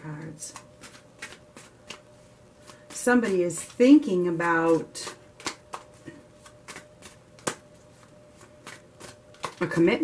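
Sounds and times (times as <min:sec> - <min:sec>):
cards being shuffled: 0:00.2 - 0:09.9.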